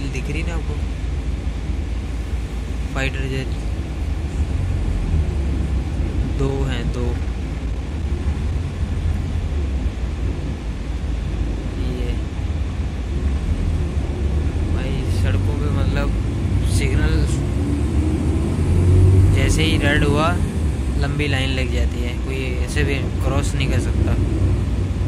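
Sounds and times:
bus engine and road rumble: 0:00.0 - 0:25.0
voices: 0:02.9 - 0:03.8, 0:05.9 - 0:07.3, 0:14.6 - 0:17.5, 0:19.3 - 0:24.3.

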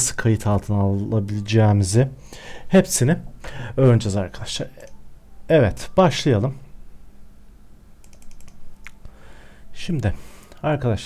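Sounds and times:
keyboard and mouse clicks: 0:08.0 - 0:09.1.

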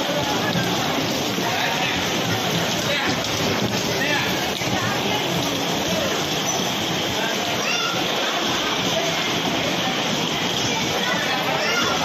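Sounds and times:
bumper cars rumbling: 0:00.0 - 0:12.0
faint voices: 0:00.0 - 0:12.0.

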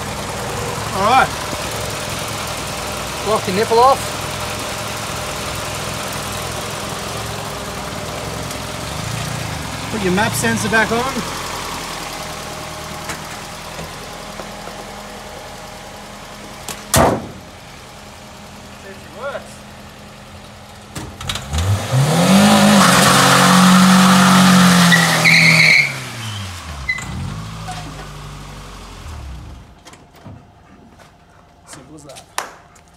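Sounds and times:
car engine idling: 0:00.0 - 0:21.7
car bonnet slamming shut: 0:16.7 - 0:17.4.

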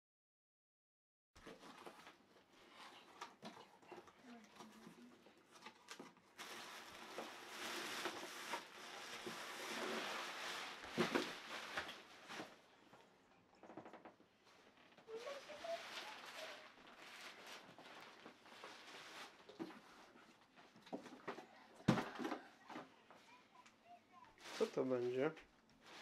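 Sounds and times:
plastic and cardboard rustling: 0:01.4 - 0:26.0.

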